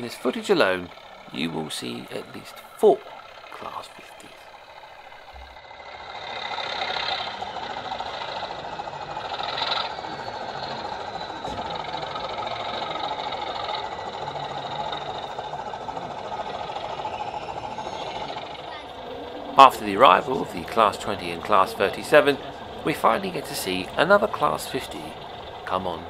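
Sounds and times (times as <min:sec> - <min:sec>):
model train diesel engine sound: 0:00.0 - 0:26.0.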